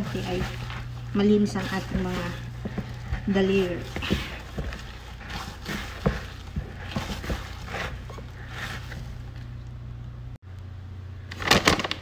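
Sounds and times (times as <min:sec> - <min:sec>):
dough kneaded in plastic bowl: 0:00.0 - 0:09.8
steady low hum: 0:00.0 - 0:11.3.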